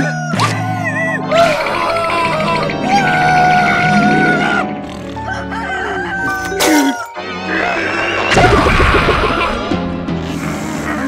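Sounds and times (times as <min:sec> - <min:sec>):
cartoon background music: 0:00.0 - 0:11.0
rooster crowing: 0:03.0 - 0:08.1.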